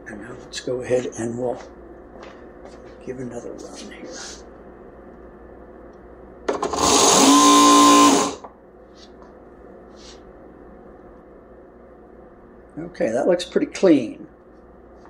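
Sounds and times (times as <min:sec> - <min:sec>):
motor whine: 0:06.5 - 0:08.5.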